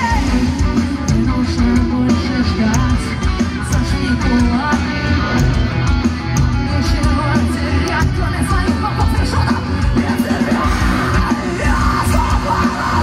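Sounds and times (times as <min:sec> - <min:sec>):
bass guitar: 0:00.0 - 0:13.0
drums: 0:00.0 - 0:13.0
electric guitars: 0:00.0 - 0:13.0
lead singer singing: 0:00.0 - 0:13.0
live rock band playing: 0:00.0 - 0:13.0.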